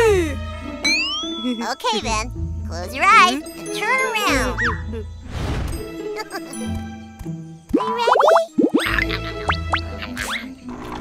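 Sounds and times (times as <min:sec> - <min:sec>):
playful cartoon music: 0:00.0 - 0:11.0.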